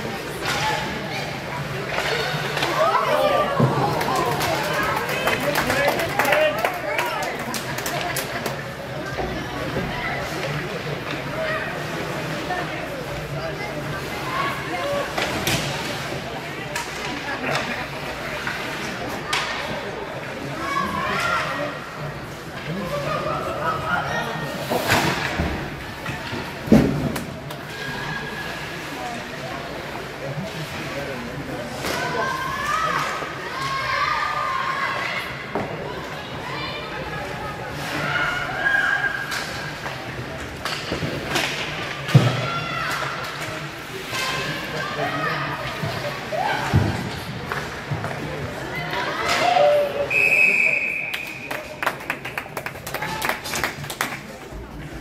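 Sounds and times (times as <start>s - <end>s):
spectators' voices: 0.0s - 55.0s
people clapping: 3.8s - 8.6s, 51.0s - 54.7s
referee's whistle: 50.1s - 51.5s.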